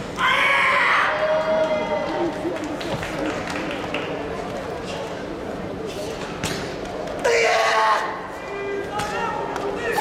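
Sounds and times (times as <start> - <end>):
voices in a large hall: 0.0 - 10.0
loud shout: 0.2 - 2.2, 7.2 - 10.0.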